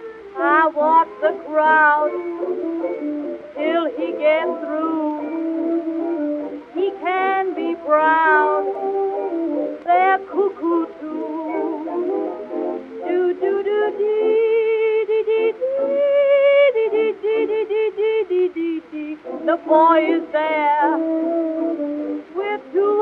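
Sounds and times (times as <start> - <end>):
jazz dance-band record: 0.0 - 23.0.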